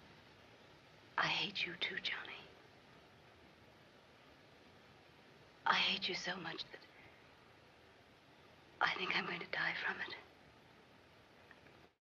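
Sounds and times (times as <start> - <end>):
film soundtrack hiss: 0.0 - 12.0
woman whispering: 1.2 - 2.6, 5.7 - 6.9, 8.8 - 10.3.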